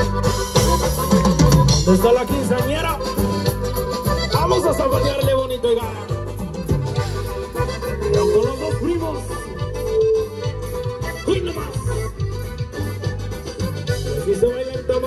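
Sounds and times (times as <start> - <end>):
button accordion melody: 0.0 - 15.0
drums: 0.0 - 15.0
electric bass: 0.0 - 15.0
guitar: 0.0 - 15.0.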